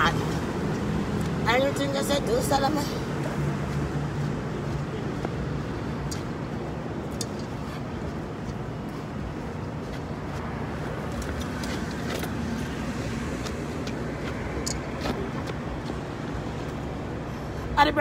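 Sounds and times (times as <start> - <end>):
passing cars rumbling: 0.0 - 18.0.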